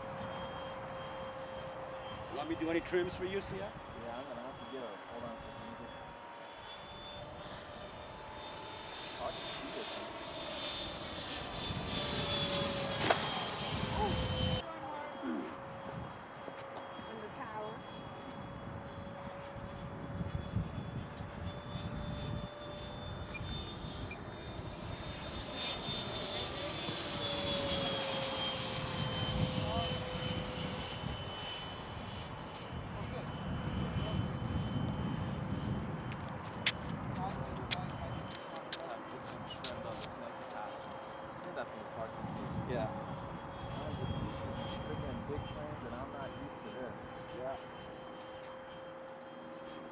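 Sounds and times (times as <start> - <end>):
rc jet fan whining: 0.0 - 49.9.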